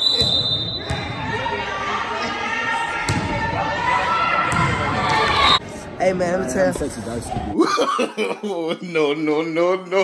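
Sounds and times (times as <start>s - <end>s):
referee's whistle: 0.0s - 1.0s
crowd chatter: 0.6s - 7.6s.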